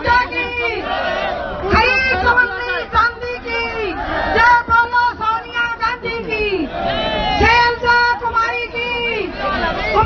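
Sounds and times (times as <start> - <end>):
women calling out: 1.6 - 10.0.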